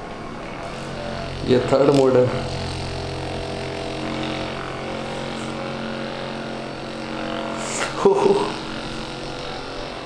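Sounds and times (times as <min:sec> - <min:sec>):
massage gun motor buzzing: 0:00.1 - 0:10.0.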